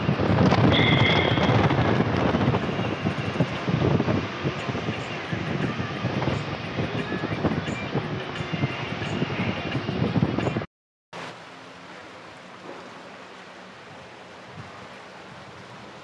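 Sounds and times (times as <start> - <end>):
wind buffeting microphone: 0.0 - 10.7, 13.7 - 16.0
vehicle rumble on road: 0.0 - 16.0.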